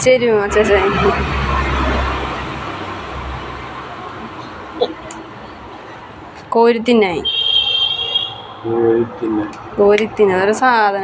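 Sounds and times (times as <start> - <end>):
road vehicle rumbling past: 0.0 - 11.0.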